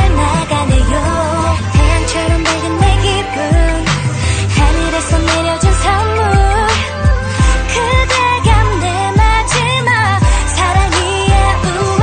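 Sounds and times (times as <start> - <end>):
deep bass kicks: 0.0 - 12.0.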